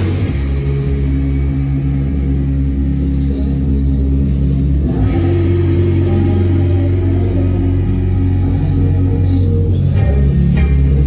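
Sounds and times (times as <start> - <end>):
amplified band drone of held notes: 0.0 - 11.0.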